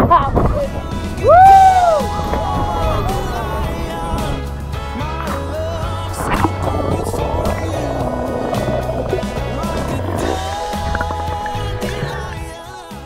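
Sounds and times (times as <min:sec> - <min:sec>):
music with heavy bass line: 0:00.7 - 0:13.0.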